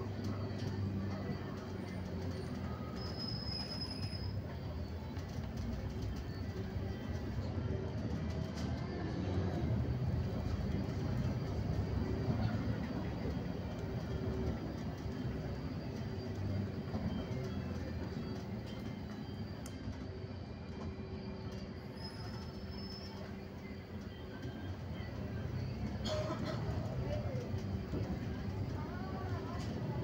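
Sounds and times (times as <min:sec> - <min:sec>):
road and engine rumble: 0:00.0 - 0:30.0.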